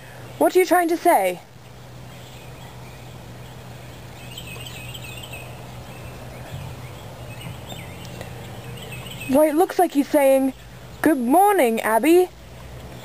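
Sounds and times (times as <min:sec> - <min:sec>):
background hiss: 0:00.0 - 0:13.0
faint bird chirps: 0:02.1 - 0:09.5.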